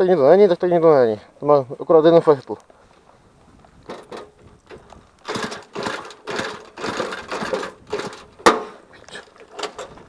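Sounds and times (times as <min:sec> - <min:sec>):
moped pedal drive clatter: 0:03.8 - 0:10.0.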